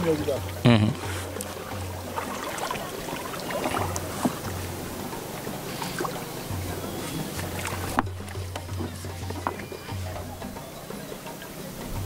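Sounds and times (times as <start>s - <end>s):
background music with bass: 0.0s - 12.0s
water sloshing: 0.0s - 12.0s.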